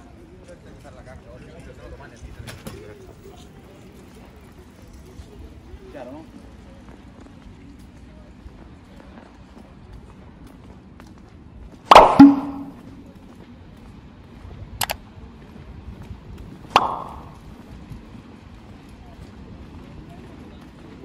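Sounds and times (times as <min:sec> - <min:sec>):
low city background: 0:00.0 - 0:21.0
brief sharp click: 0:11.9 - 0:12.9
sharp metallic knocks and clangs: 0:11.9 - 0:13.0, 0:16.8 - 0:17.5.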